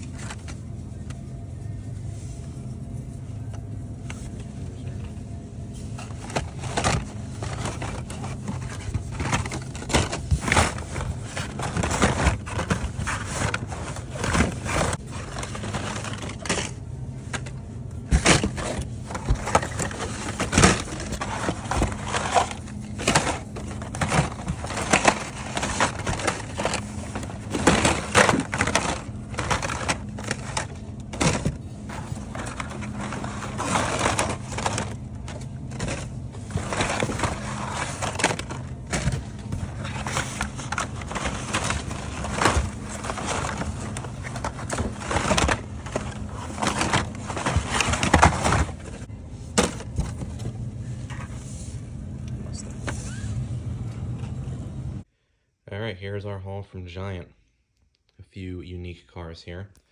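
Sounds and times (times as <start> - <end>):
cardboard and plastic packs clacking: 0.0 - 1.2, 5.8 - 51.3
low steady hum: 0.0 - 59.9.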